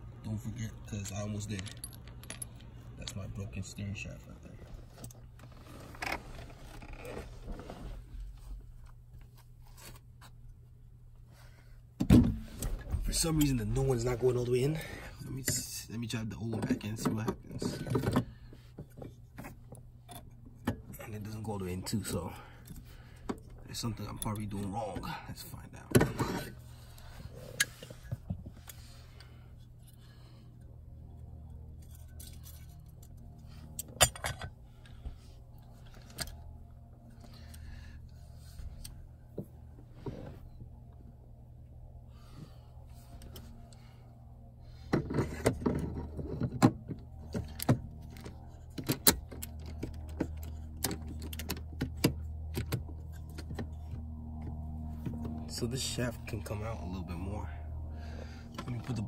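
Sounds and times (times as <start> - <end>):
steady low hum: 0.0 - 59.0
metal clicks and rattles: 0.9 - 3.3.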